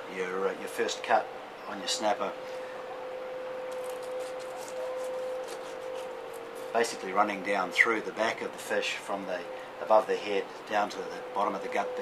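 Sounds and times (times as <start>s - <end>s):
steady hum: 0.0s - 12.0s
knife scraping through fish scales: 3.8s - 6.2s.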